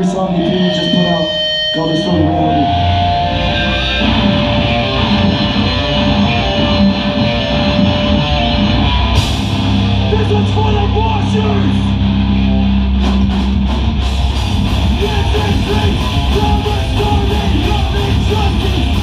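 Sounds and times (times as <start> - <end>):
hardcore band playing live: 0.0 - 19.0.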